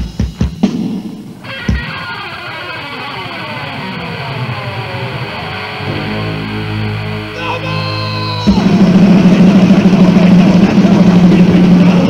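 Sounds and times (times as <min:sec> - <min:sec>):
distorted electric guitar low note: 0:01.4 - 0:12.0.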